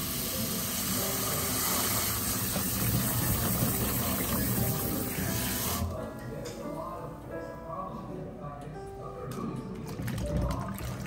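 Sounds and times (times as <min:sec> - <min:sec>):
tap water filling a plastic bowl: 0:01.0 - 0:05.9, 0:09.9 - 0:11.0.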